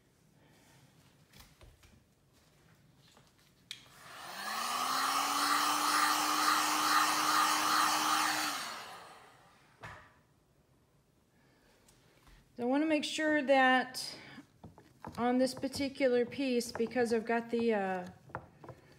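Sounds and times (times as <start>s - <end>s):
heat gun motor humming: 4.0s - 9.3s
rush of hot air: 4.0s - 9.4s.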